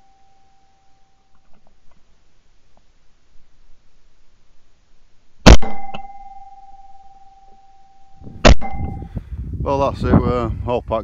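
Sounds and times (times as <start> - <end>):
steady high ringing tone: 0.0 - 1.4, 5.5 - 9.2
shotgun shot: 5.5 - 6.1, 8.4 - 9.0.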